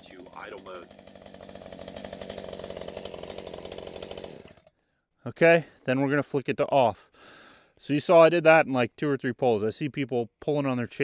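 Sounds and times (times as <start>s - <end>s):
chainsaw engine idling: 0.0s - 4.8s.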